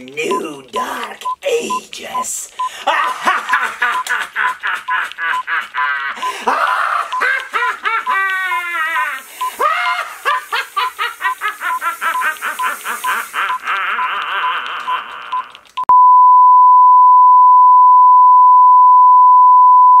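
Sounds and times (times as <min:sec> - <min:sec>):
man laughing maniacally: 0:02.7 - 0:15.7
hiss: 0:06.4 - 0:14.4.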